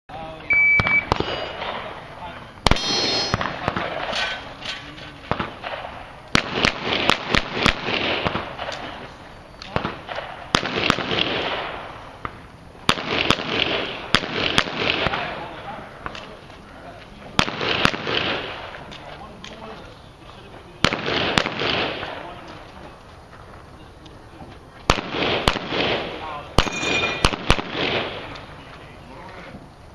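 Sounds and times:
shot timer beep: 0:00.5 - 0:01.6
pistol shots: 0:00.8 - 0:02.0, 0:02.6 - 0:04.5, 0:05.3 - 0:09.0, 0:09.6 - 0:16.3, 0:17.4 - 0:18.9, 0:20.8 - 0:22.6, 0:24.9 - 0:28.4
metallic ring of steel plate: 0:02.7 - 0:03.5, 0:26.6 - 0:27.3.

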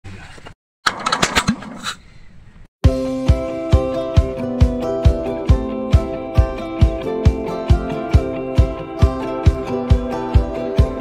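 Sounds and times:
tool handling noise: 0:00.1 - 0:02.1.

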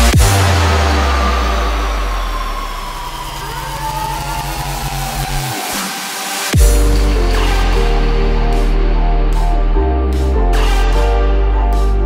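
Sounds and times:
falling synth sweep: 0:00.0 - 0:09.8
buzzing synth bass: 0:00.0 - 0:12.0.

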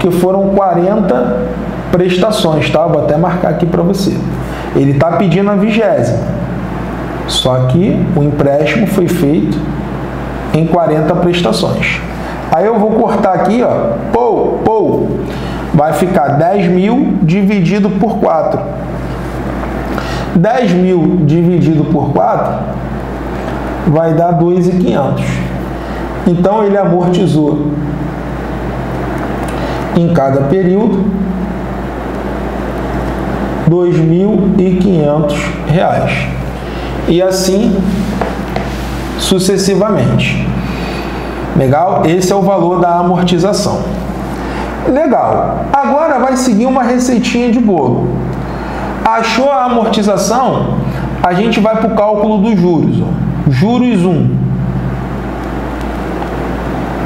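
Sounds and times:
low room hum and hiss: 0:00.0 - 0:57.0.

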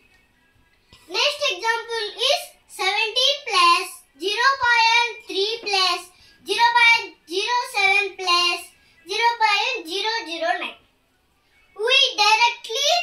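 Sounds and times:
young boy talking: 0:01.1 - 0:10.8, 0:11.8 - 0:13.0.

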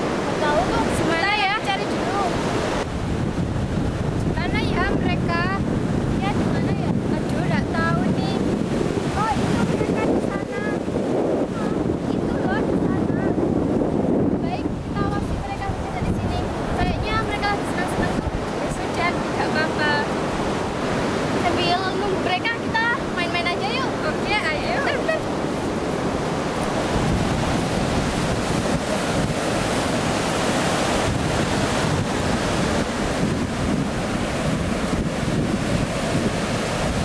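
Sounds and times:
wind buffeting microphone: 0:00.0 - 0:37.0
girls talking: 0:00.3 - 0:02.4, 0:11.5 - 0:13.4, 0:14.4 - 0:20.1, 0:21.3 - 0:25.8.

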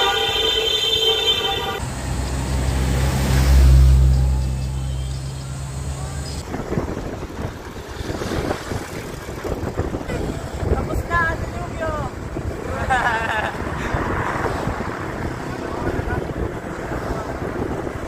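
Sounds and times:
vehicle horn: 0:00.0 - 0:01.8
vehicle engine rumble: 0:00.0 - 0:18.0
wind buffeting microphone: 0:06.4 - 0:18.0.

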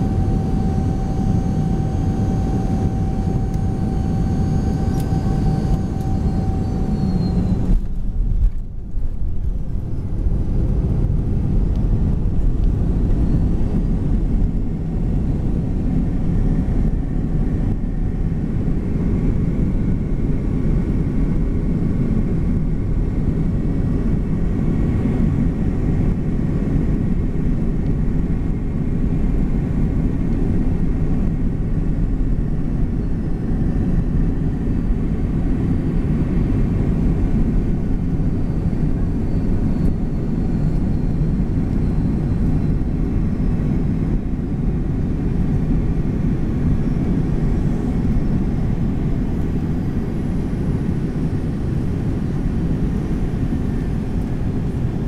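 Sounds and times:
faint thin whine: 0:00.0 - 0:10.8
jet engine and wheel rumble: 0:00.0 - 0:55.0.

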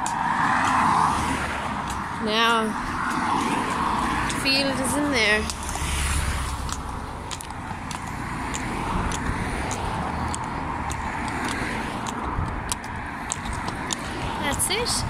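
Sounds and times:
car passing: 0:00.0 - 0:15.0
road traffic rushing: 0:00.0 - 0:15.0.

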